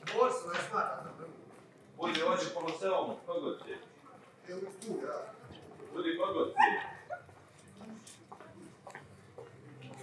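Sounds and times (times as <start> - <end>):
people's voices: 0.0 - 10.0
dog barking: 6.6 - 7.2.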